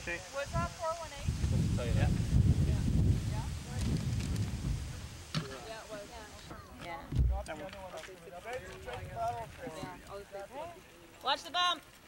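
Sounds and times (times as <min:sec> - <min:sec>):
wind buffeting microphone: 0:00.0 - 0:07.5, 0:08.5 - 0:10.2
background voices talking: 0:00.0 - 0:11.9.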